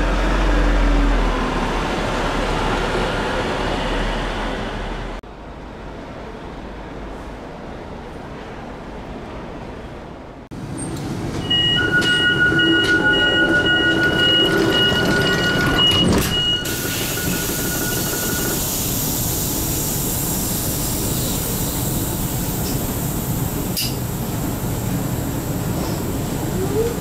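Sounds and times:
high steady train squeal: 10.8s - 23.0s
train running rumble and hiss: 16.6s - 27.0s.

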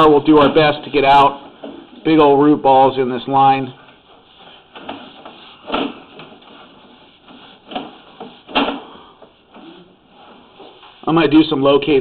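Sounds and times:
cable scraping and knocking in pipe: 3.8s - 11.1s.

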